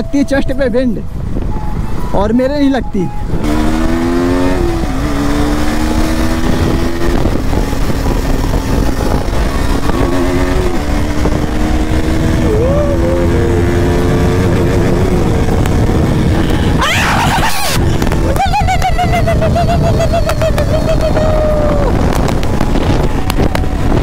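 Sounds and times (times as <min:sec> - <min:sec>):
heavy wind rush: 0:00.0 - 0:24.0
motorcycle engine at high revs: 0:03.3 - 0:16.8.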